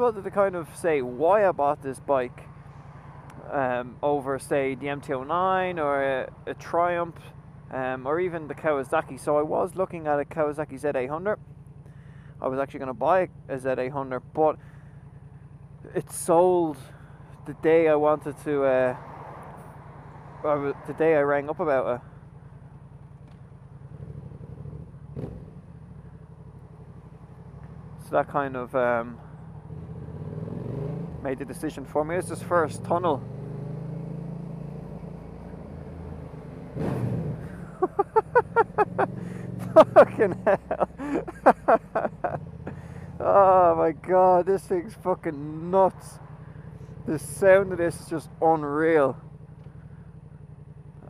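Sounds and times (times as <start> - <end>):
motorcycle engine running at low revs: 11.1 - 17.6, 19.0 - 51.0.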